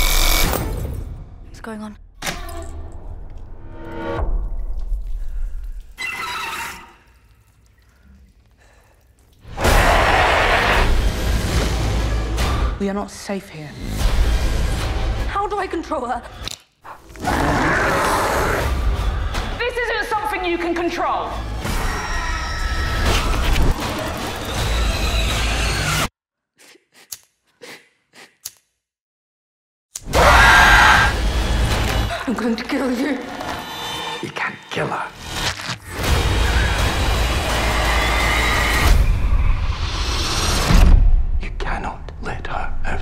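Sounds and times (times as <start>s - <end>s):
horror trailer score build: 35.9s - 43.0s
person whispering: 41.4s - 43.0s.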